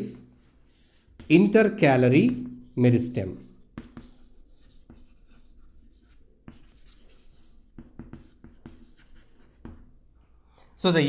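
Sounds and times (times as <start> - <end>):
chalk scratching on chalkboard: 0.0 - 9.9
chalk tapping on board: 0.4 - 1.5, 3.7 - 9.9.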